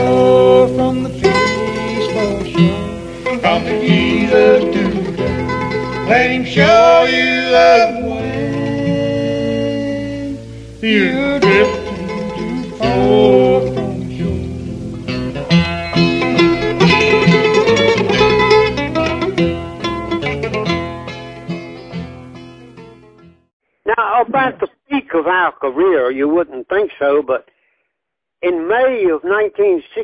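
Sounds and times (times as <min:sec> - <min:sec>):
bluegrass band playing gospel song: 0:00.0 - 0:23.1.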